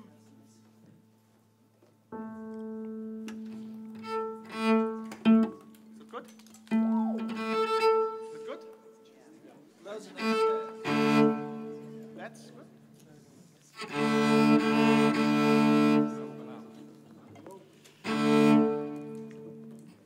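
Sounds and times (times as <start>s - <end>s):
cello bowed notes: 2.1s - 13.0s, 13.6s - 20.0s.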